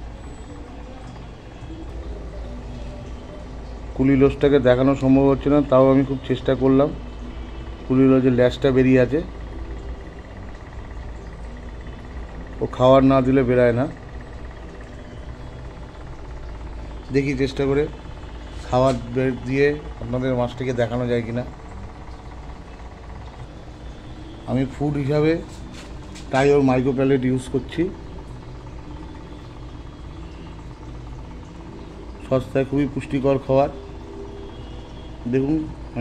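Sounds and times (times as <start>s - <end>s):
low mechanical hum with hiss: 0.0s - 36.0s.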